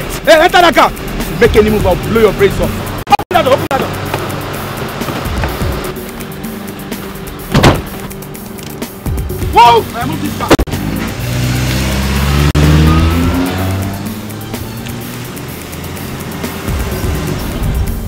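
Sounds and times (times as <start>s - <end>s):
car engine revving: 0.0s - 8.5s, 9.9s - 18.0s
film music: 0.0s - 18.0s
car door thumps: 5.0s - 5.8s, 7.4s - 8.2s.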